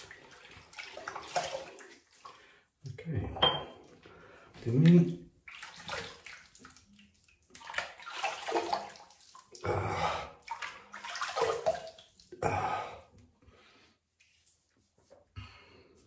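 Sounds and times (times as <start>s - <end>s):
water splashing on face: 0.0s - 2.1s, 7.5s - 9.7s, 10.4s - 12.4s.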